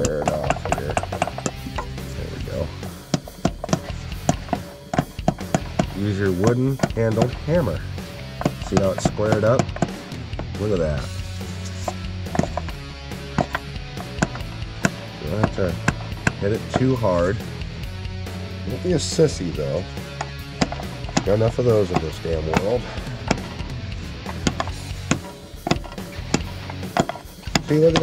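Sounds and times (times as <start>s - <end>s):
hammer tapping: 0.0s - 10.8s, 11.5s - 17.4s, 20.1s - 28.0s
background music: 0.0s - 28.0s.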